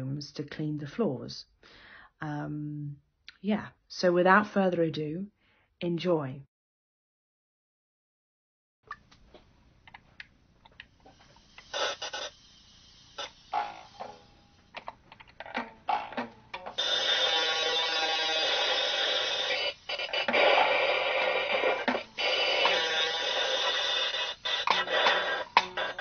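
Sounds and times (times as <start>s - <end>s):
hurdy-gurdy scraping strokes: 16.8s - 26.0s.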